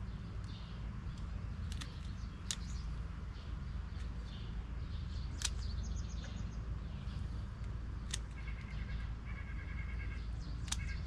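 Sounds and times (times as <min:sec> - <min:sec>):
steady low rumble: 0:00.0 - 0:11.0
sharp click: 0:00.4 - 0:02.8, 0:05.3 - 0:06.4, 0:07.6 - 0:08.8, 0:10.6 - 0:11.0
bird rapid trill: 0:08.1 - 0:11.0.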